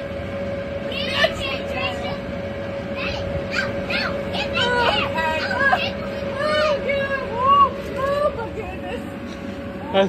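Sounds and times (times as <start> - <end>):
inflation blower hum: 0.0 - 10.0
high-pitched voices calling out: 2.9 - 8.9.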